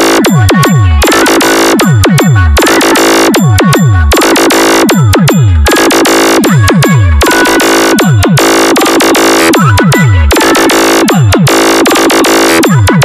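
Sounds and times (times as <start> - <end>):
electronic dance music: 0.0 - 13.0
noise bursts: 0.0 - 13.0.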